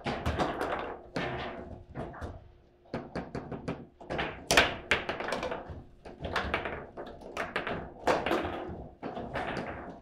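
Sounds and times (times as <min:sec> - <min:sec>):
foosball ball knocks and clacks: 0:00.0 - 0:10.0.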